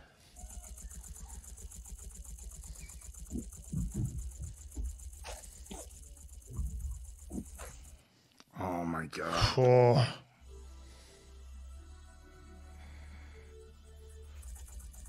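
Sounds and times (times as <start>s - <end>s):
gatling guns firing: 0.4s - 8.0s.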